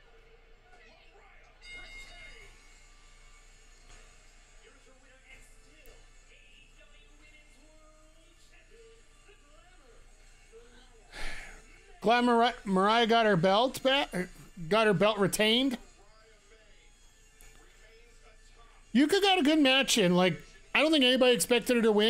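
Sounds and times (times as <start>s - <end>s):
commentators talking: 11.2s - 15.8s, 19.0s - 22.0s
broadcast music: 11.2s - 15.9s, 18.9s - 22.0s.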